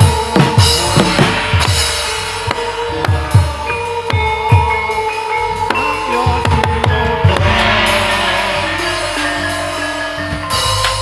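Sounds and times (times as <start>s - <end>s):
deep drum strokes: 0.0s - 4.8s, 6.5s - 10.5s
gamelan-style music: 0.0s - 11.0s
ringing metallic tones: 0.6s - 11.0s.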